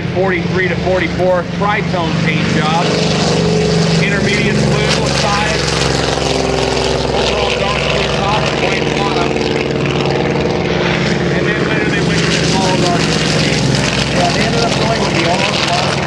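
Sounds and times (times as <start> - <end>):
propeller aircraft engine drone: 0.0 - 16.0
second aircraft engine: 0.0 - 16.0.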